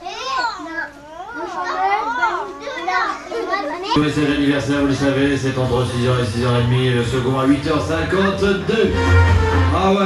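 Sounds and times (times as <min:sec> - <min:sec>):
young children's voices: 0:00.0 - 0:04.0.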